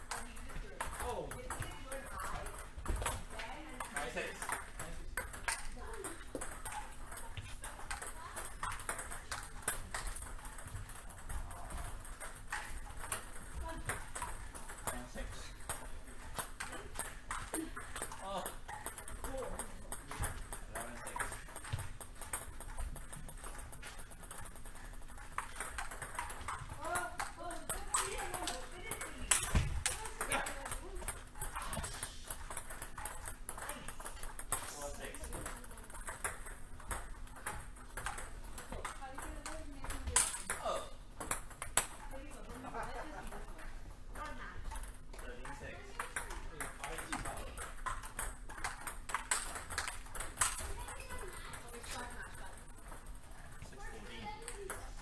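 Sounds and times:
table tennis ball clicking: 0.0 - 40.6, 41.2 - 42.3, 45.8 - 53.2.

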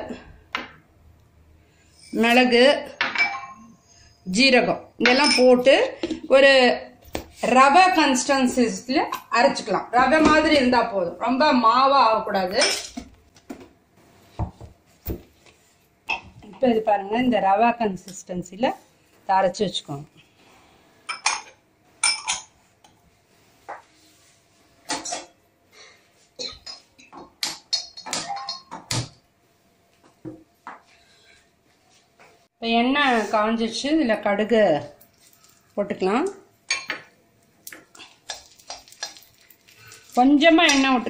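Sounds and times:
woman talking: 2.1 - 3.0, 4.3 - 12.8, 16.4 - 20.1, 32.6 - 35.0, 35.8 - 36.5, 40.2 - 41.0
utensils clinking against dishes: 3.1 - 3.8, 5.0 - 5.7, 12.4 - 13.1, 26.4 - 29.0.

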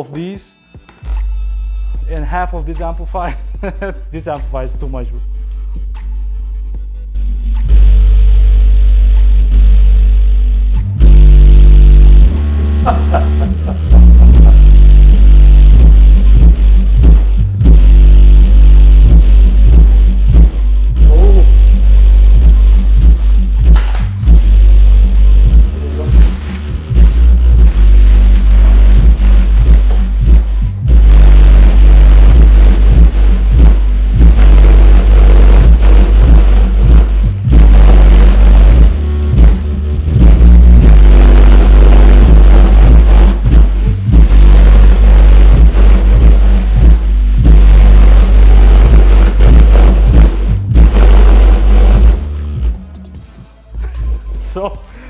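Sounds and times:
bass-heavy music through subwoofer: 0.0 - 55.0.

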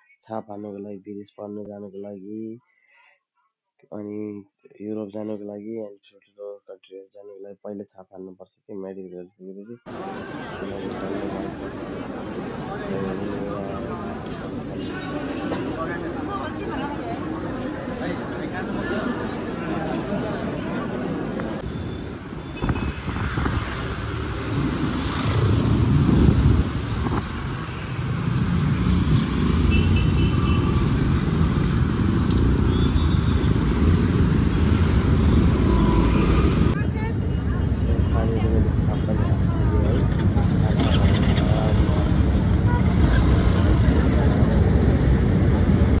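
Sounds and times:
traffic vehicles: 9.9 - 46.0
wind noise on microphone: 22.5 - 27.7.

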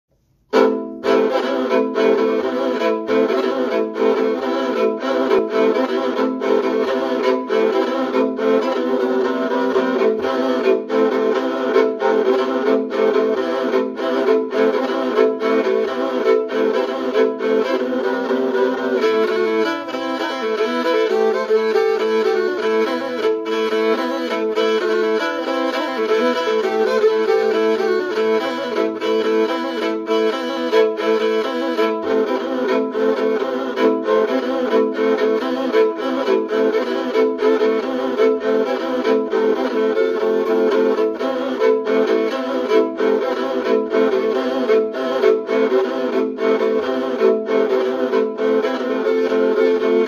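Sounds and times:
bowed lyre drone and melody: 0.5 - 50.0.

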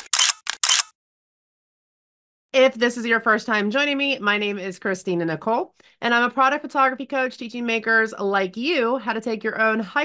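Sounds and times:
camera shutter clicks: 0.0 - 1.0.

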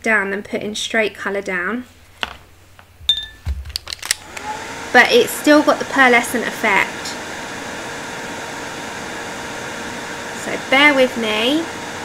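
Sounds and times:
electric dryer motor humming: 3.5 - 12.0.

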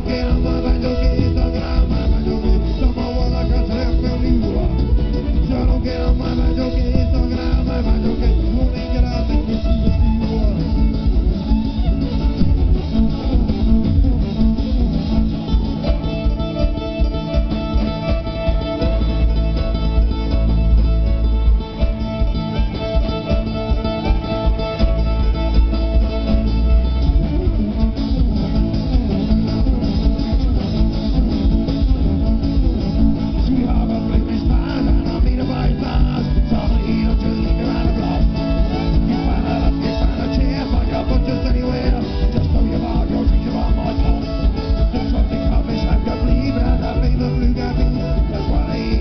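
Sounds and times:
live band playing instrumental: 0.0 - 49.0.

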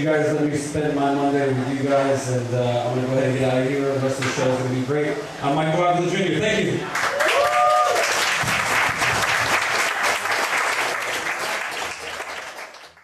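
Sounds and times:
audience applauding: 6.9 - 13.0.

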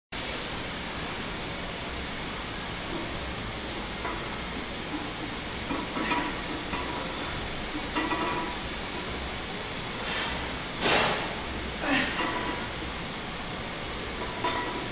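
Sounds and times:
gym room noise hiss: 0.2 - 14.9.

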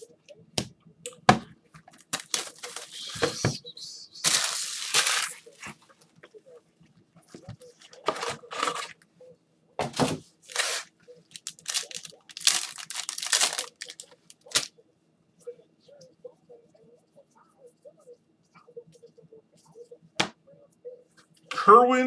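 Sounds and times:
plastic wrap crinkling: 2.0 - 3.3, 4.2 - 5.8, 10.5 - 14.7.

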